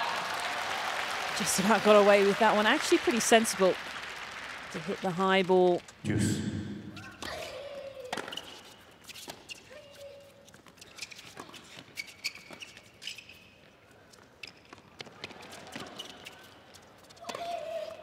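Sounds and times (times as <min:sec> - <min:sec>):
tennis shoes squeaking on court: 0:06.9 - 0:18.0.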